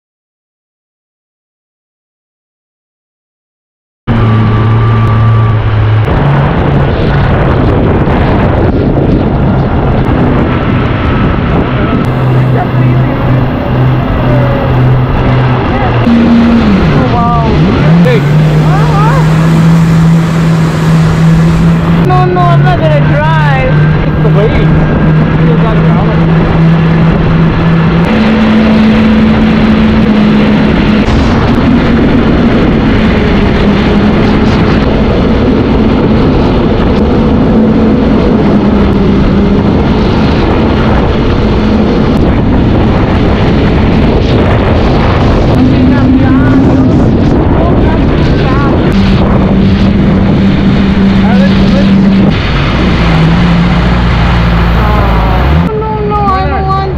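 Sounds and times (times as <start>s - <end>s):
jet ski engine: 4.1s - 56.9s
water spray rushing: 12.1s - 23.0s, 44.4s - 55.7s.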